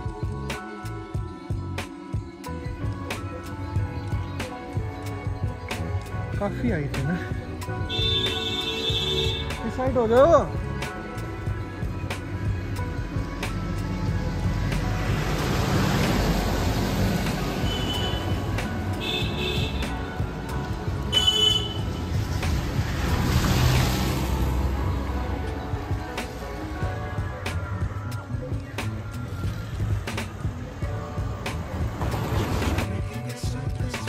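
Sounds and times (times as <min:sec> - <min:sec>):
background music: 0:00.0 - 0:34.0
cars passing by: 0:03.8 - 0:34.0.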